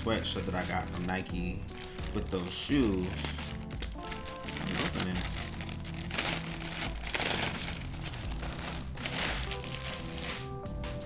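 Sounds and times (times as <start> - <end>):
background music: 0.0 - 11.0
plastic bag crinkling: 1.4 - 10.6.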